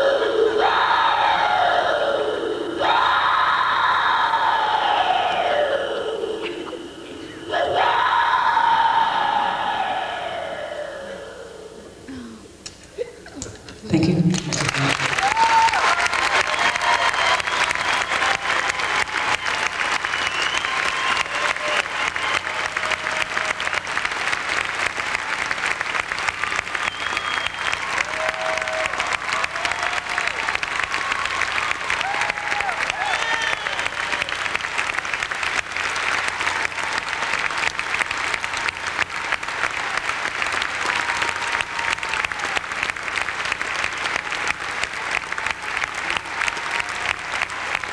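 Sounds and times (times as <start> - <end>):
audience cheering: 0.0 - 11.9, 14.5 - 47.9
audience applauding: 14.1 - 47.9.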